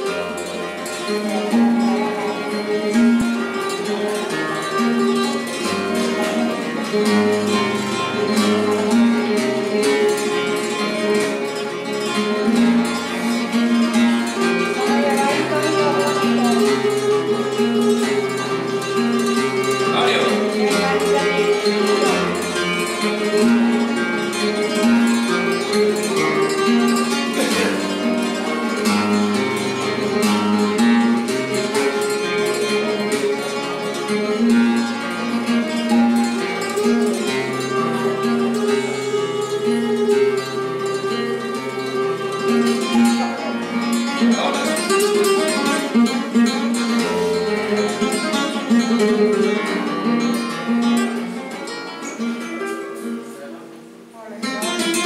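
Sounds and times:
flamenco guitar playing: 0:00.0 - 0:55.0.

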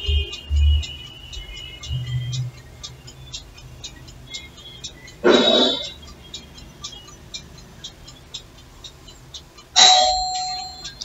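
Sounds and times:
loud chimes: 0:09.8 - 0:11.0.

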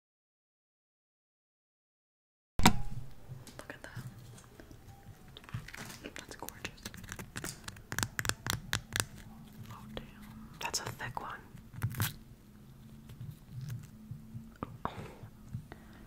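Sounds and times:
crisp clicks and crackles: 0:03.4 - 0:14.7
candy cracking: 0:04.4 - 0:14.0.

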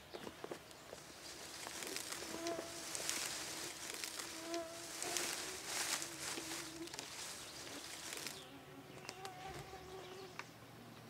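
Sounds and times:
fly buzzing: 0:01.6 - 0:10.4
faint clicks: 0:09.0 - 0:09.4.

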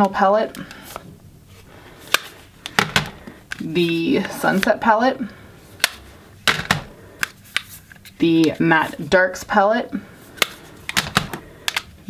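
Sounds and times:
plastic cases clicking: 0:02.0 - 0:03.7, 0:05.8 - 0:08.6, 0:10.4 - 0:12.0.

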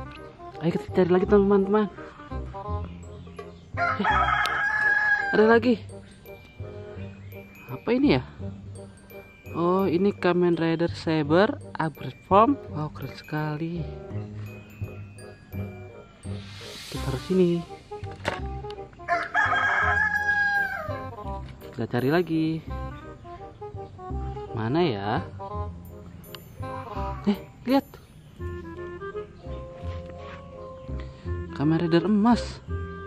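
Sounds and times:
faint background music with beat: 0:00.0 - 0:33.0
rooster crowing: 0:03.8 - 0:05.5, 0:19.1 - 0:21.1.

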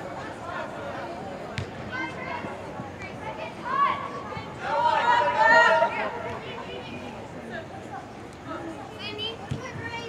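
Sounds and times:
soccer ball kicked: 0:01.5 - 0:01.8.

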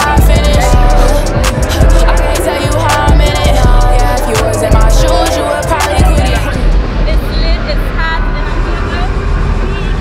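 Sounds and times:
low rumble: 0:00.2 - 0:09.8
women talking: 0:05.9 - 0:09.2.

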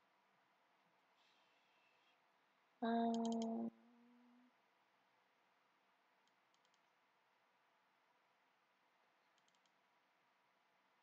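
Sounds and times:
computer mouse clicks: 0:03.1 - 0:03.6, 0:06.2 - 0:06.9, 0:09.3 - 0:09.8.

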